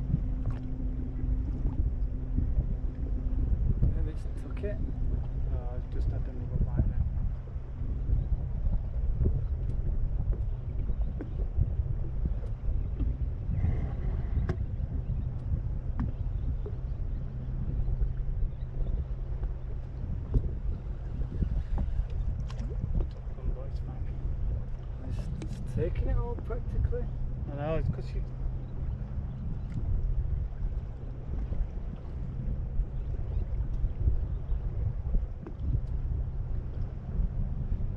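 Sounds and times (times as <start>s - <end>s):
choppy water: 0.0s - 37.9s
steady low hum: 0.0s - 37.9s
wind rumbling on microphone: 0.0s - 37.9s.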